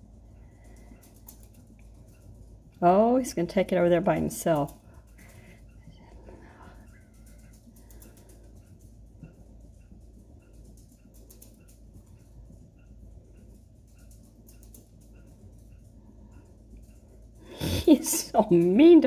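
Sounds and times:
low background hum: 0.0s - 19.0s.

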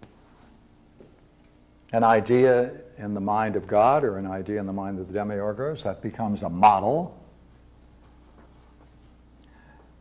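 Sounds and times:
man speaking: 2.0s - 7.2s
chalk scratching on blackboard: 7.2s - 9.2s.

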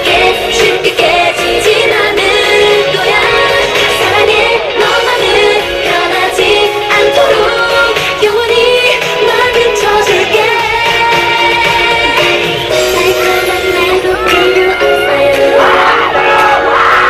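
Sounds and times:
upbeat pop backing track: 0.0s - 17.0s
women singing into microphones: 0.0s - 17.0s.

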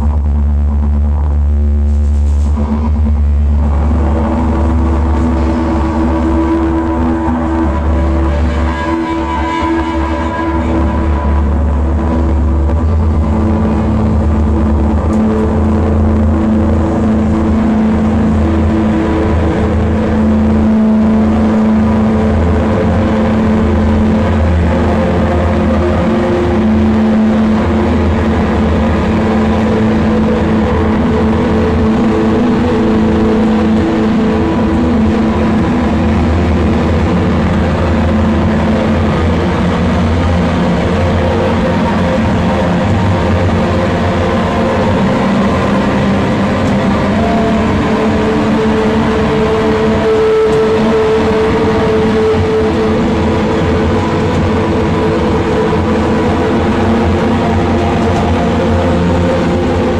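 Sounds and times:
loud amplified guitar and bass drone: 0.0s - 59.9s.

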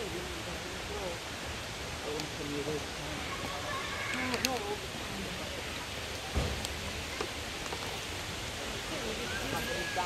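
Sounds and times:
waterfall rushing: 0.0s - 10.0s
low thump: 6.3s - 6.7s.

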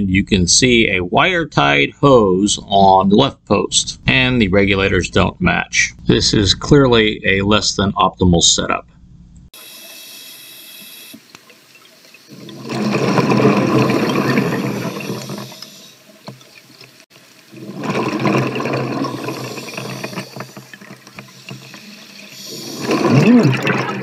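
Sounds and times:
faint regulator hiss: 9.4s - 13.0s, 14.1s - 23.1s
exhaled bubbles rushing: 12.2s - 15.8s, 17.5s - 24.0s.

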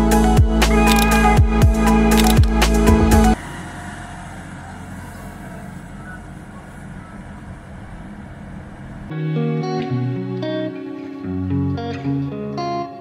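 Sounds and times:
tractor engine running: 0.3s - 9.1s
outdoor background noise: 2.2s - 9.2s.

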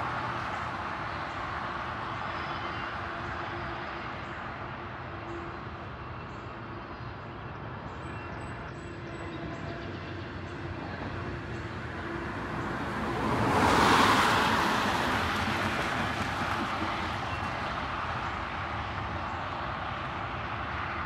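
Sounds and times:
train wheels rolling on rails: 14.4s - 18.6s.

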